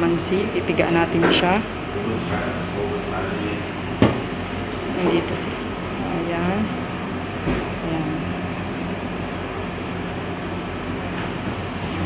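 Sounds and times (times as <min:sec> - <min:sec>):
air conditioner hum and hiss: 0:00.0 - 0:12.0.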